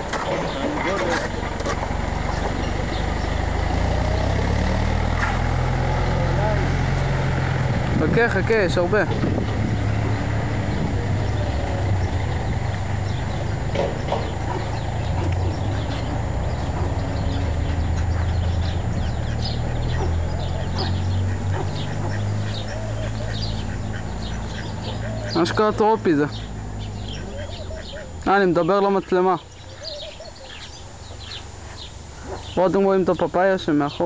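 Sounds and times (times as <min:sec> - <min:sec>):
birds chirping: 0:00.0 - 0:34.0
steady low rumble: 0:06.2 - 0:25.3.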